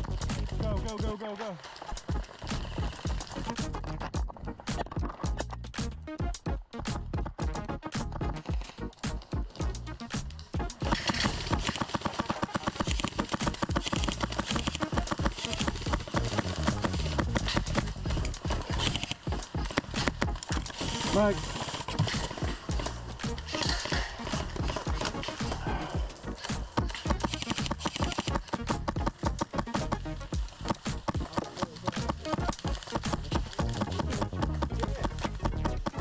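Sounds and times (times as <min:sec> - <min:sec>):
background music: 0:00.0 - 0:36.0
airsoft guns firing rapid shots: 0:10.5 - 0:36.0.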